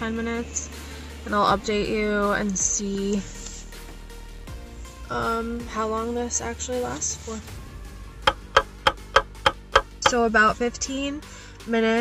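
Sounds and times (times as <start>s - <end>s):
clock ticking: 8.3s - 10.2s.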